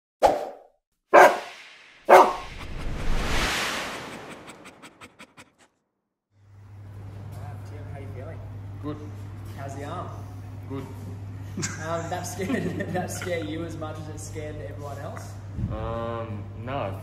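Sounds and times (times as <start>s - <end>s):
dog barks: 1.1s - 1.5s, 2.1s - 2.4s
whoosh: 1.2s - 5.9s.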